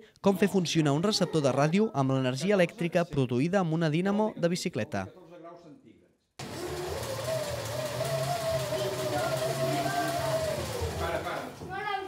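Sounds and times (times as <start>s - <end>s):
dynamo whine: 6.4s - 11.5s
bicycle dynamo whirring hiss: 6.4s - 11.6s.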